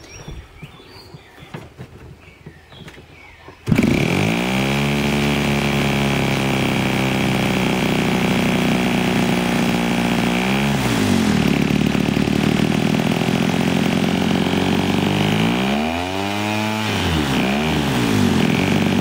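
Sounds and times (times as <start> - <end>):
model airplane engine revving: 3.6 - 19.0.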